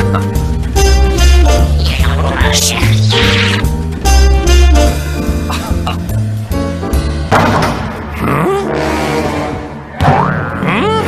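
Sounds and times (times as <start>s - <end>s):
music: 0.0s - 11.0s
cartoon boing: 10.0s - 11.0s.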